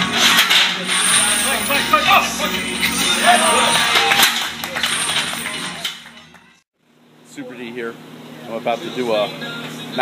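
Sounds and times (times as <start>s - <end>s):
gym music: 0.0s - 6.6s
metal chains jingling: 1.0s - 5.8s
voices shouting: 1.2s - 4.9s.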